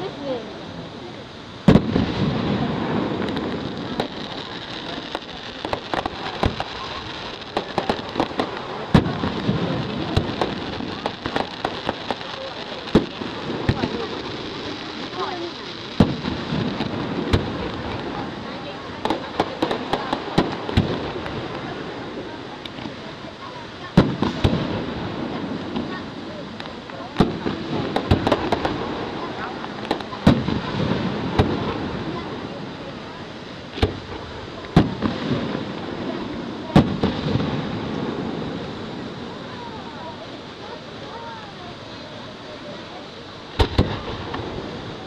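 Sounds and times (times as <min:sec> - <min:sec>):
smaller firework crack: 0:00.0 - 0:45.0
firework shells bursting: 0:01.6 - 0:23.1, 0:23.9 - 0:32.5, 0:33.6 - 0:39.5, 0:43.5 - 0:45.0.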